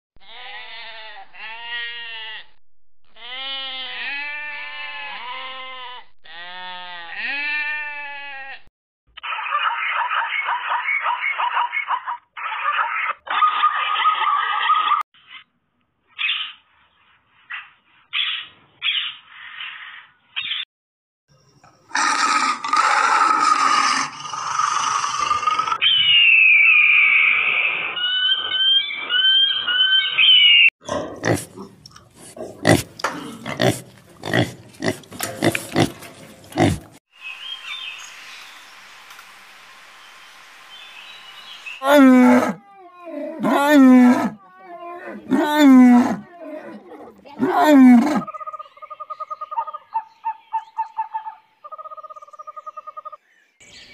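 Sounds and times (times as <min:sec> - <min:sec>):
animal calls: 0:41.8 - 0:53.2.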